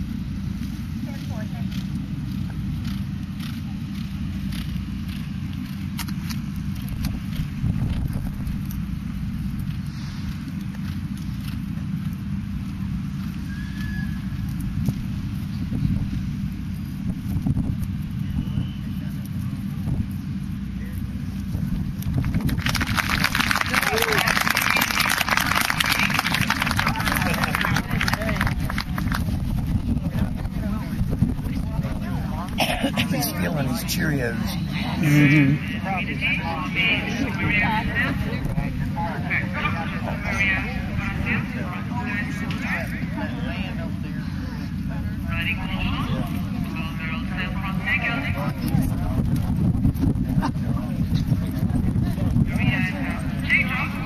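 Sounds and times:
low outdoor rumble: 0:00.0 - 0:54.0
faint voices: 0:23.1 - 0:54.0
people talking indistinctly: 0:29.8 - 0:49.5.

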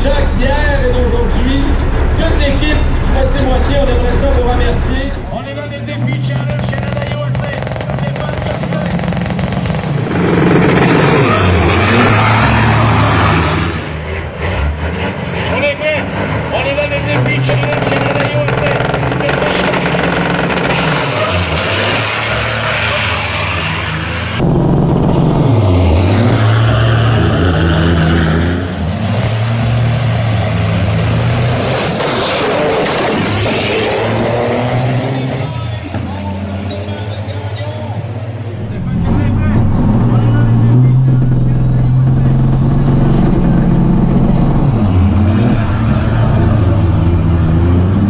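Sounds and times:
diesel truck engines revving: 0:00.0 - 0:48.0.

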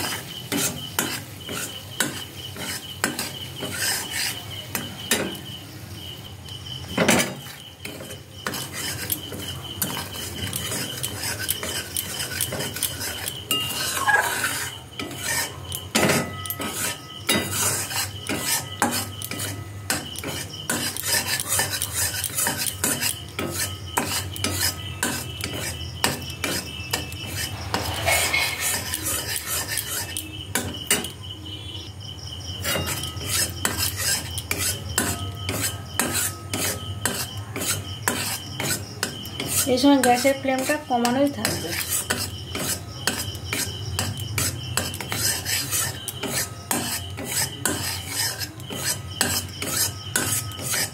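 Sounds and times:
metal spoon scraping a pan: 0:00.0 - 0:50.9.

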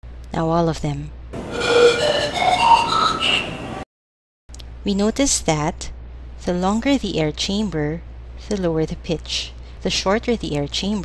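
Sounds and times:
breathy whistling notes from tubes: 0:01.4 - 0:03.7.

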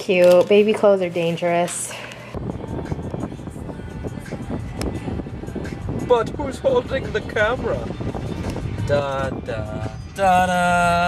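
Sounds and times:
car road and engine noise: 0:02.3 - 0:11.0
music playing in car: 0:02.3 - 0:11.0.

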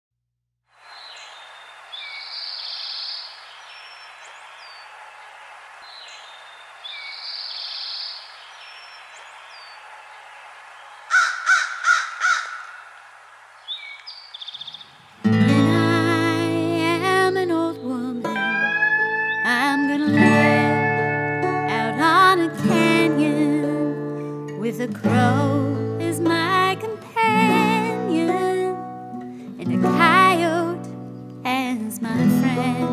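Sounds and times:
bird chirps: 0:00.8 - 0:13.0, 0:13.6 - 0:15.4, 0:18.4 - 0:20.2
bird calls: 0:00.8 - 0:15.4, 0:18.4 - 0:20.1
crow cawing: 0:11.1 - 0:15.1
music: 0:15.3 - 0:32.9.

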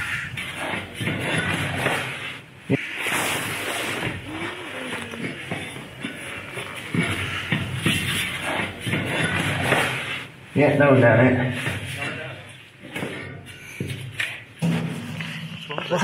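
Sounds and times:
rustling and handling noise: 0:00.3 - 0:10.6.

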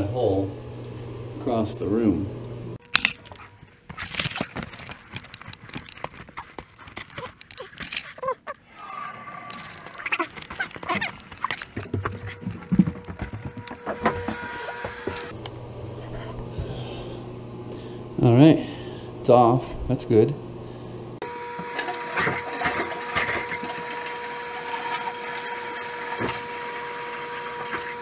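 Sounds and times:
low steady hum: 0:00.0 - 0:21.9
footsteps on carpeted stairs: 0:10.6 - 0:15.4.

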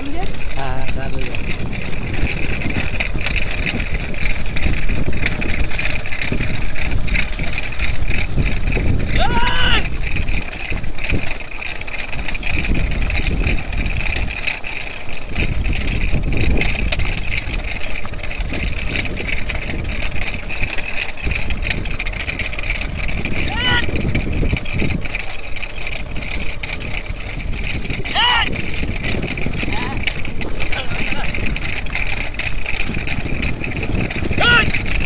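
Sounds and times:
wind rumble on microphone: 0:00.0 - 0:35.0
person shouting: 0:09.1 - 0:09.9, 0:23.4 - 0:23.9, 0:28.1 - 0:28.5, 0:34.3 - 0:34.8.

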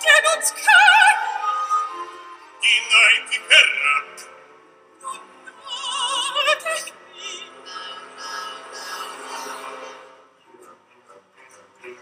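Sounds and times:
operatic soprano singing: 0:00.0 - 0:04.3, 0:05.0 - 0:10.0.

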